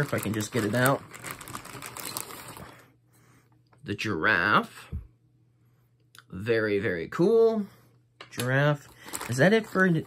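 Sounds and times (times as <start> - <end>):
plastic bag crinkling: 0.0 - 2.9, 8.7 - 10.0.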